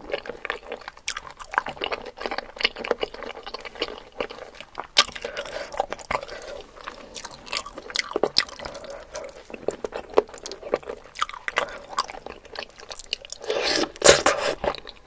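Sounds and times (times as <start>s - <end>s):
chewing with wet smacks: 0.0s - 15.0s.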